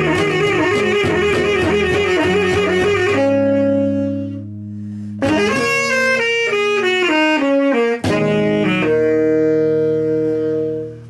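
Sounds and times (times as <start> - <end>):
saxophone long note: 0.0 - 11.0.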